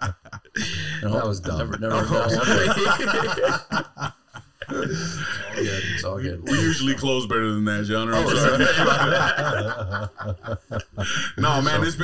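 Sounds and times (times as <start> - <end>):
men laughing: 0.0 - 7.0, 8.1 - 12.0.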